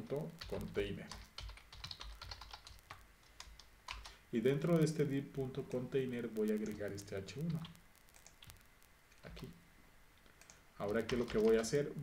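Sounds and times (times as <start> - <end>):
typing on computer keyboard: 0.4 - 4.2, 10.4 - 11.8.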